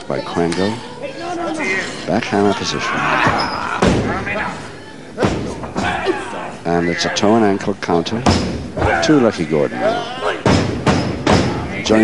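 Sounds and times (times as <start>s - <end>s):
bodies thudding on ring boards: 10.4s - 11.7s.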